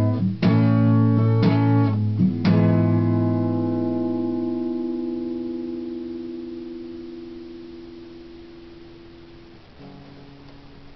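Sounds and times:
acoustic guitar chord ringing: 0.0s - 10.9s.

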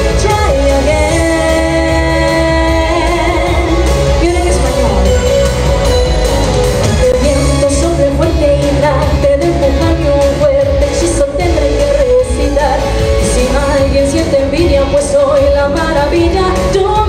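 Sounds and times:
woman singing into a microphone: 0.0s - 5.1s, 7.0s - 17.0s
pop band accompaniment: 0.0s - 17.0s.

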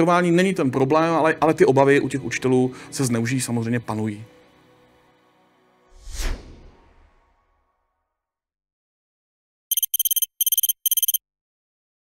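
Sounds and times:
high-pitched electronic ticks: 9.7s - 11.2s.

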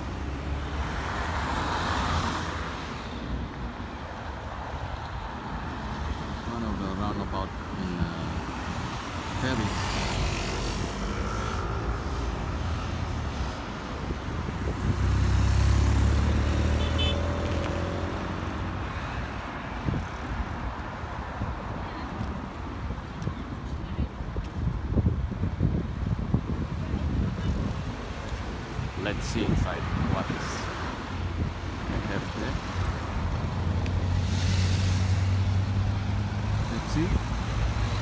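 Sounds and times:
city road traffic: 0.0s - 38.0s
wind buffeting microphone: 12.4s - 15.4s, 18.7s - 34.1s
vehicle passing close: 14.6s - 18.7s.

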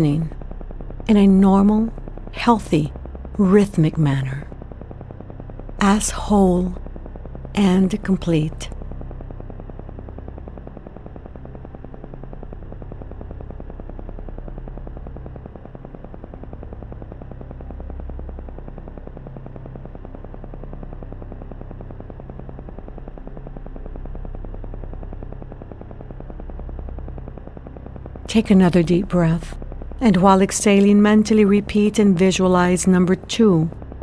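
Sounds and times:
deep low synth drone: 0.0s - 34.0s
rapid even pulse: 0.0s - 34.0s.

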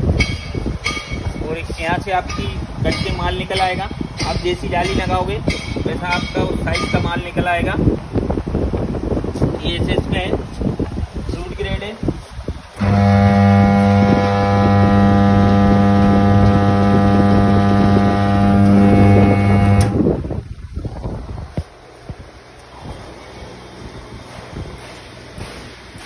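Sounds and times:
electric motor humming: 12.8s - 20.1s.

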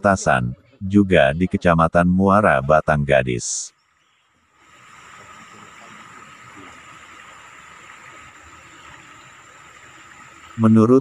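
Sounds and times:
floodwater rushing: 4.6s - 11.0s.

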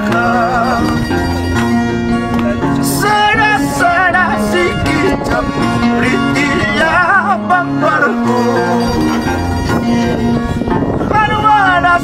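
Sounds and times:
man singing with vibrato: 0.0s - 12.0s
harp playing: 0.2s - 3.0s, 7.3s - 11.0s.

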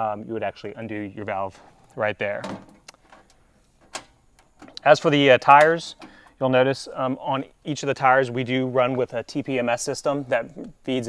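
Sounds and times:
panel latching click: 3.9s - 4.8s.

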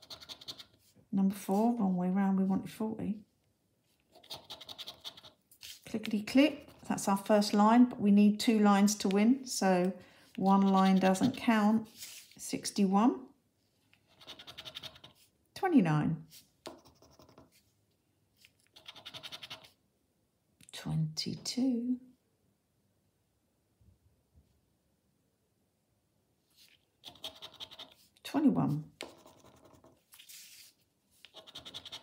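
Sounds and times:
chip scratching a scratchcard: 0.0s - 0.8s, 4.1s - 5.8s, 10.6s - 11.4s, 14.0s - 15.2s, 16.6s - 17.6s, 18.7s - 19.8s, 27.0s - 28.0s, 29.0s - 30.6s, 31.2s - 32.0s.

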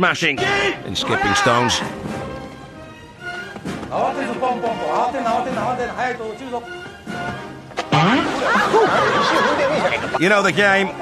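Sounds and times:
background music sustained tones: 0.0s - 11.0s.

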